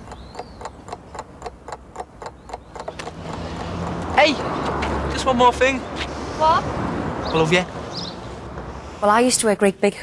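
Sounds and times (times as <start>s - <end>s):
steady regular ticking: 0.0s - 4.4s.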